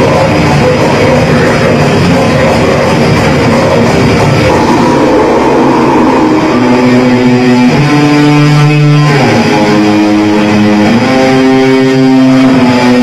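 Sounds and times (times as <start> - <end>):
drum beat: 0.0 - 10.0
electric guitar chords: 0.0 - 13.0.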